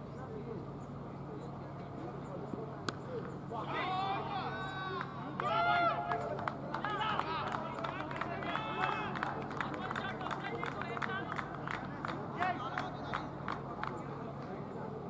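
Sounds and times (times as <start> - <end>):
players shouting short calls: 3.0 - 13.8.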